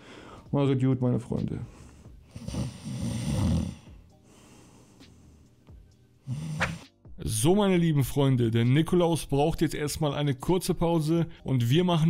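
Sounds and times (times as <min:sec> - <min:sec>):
man snoring: 0:02.1 - 0:04.2, 0:06.2 - 0:06.9.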